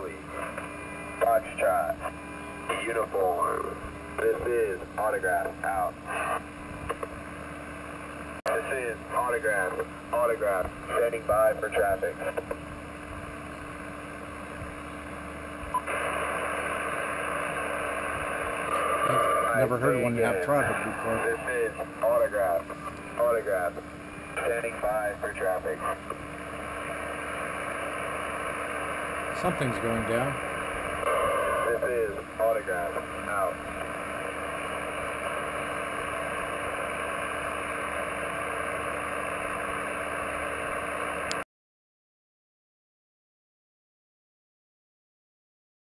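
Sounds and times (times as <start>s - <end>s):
radio static hiss: 0.0s - 41.4s
radio click: 2.0s - 3.0s, 6.2s - 7.2s, 12.2s - 12.6s, 18.6s - 26.3s
faint low hum: 7.9s - 27.8s.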